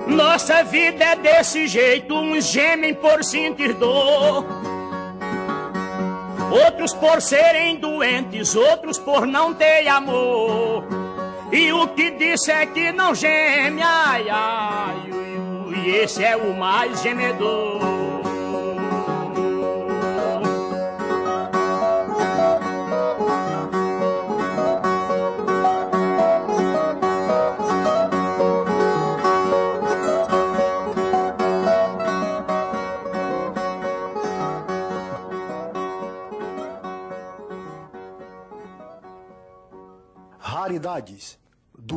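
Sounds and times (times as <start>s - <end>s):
fast plucked steel-string violas: 14.3s - 39.1s.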